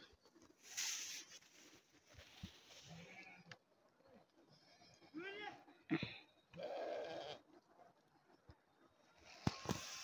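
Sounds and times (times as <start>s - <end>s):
sheep bleating: 6.5s - 7.5s.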